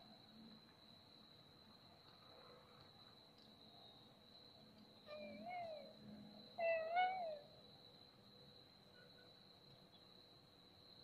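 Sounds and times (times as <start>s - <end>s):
animal calling: 5.1s - 5.9s, 6.6s - 7.4s.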